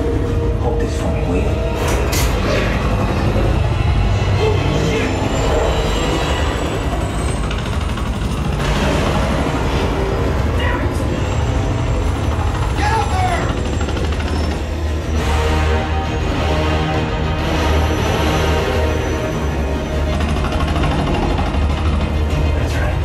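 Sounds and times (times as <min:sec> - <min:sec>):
movie music: 0:00.0 - 0:23.0
voices: 0:12.6 - 0:14.4.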